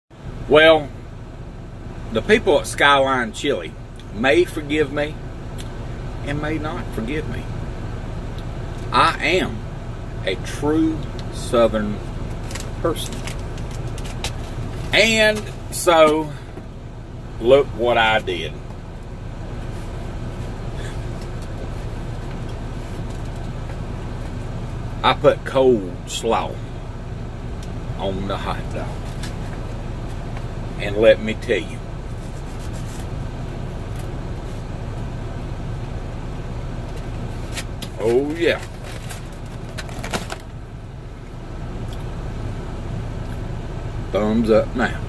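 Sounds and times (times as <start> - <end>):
vehicle engine idling: 0.1 - 45.0.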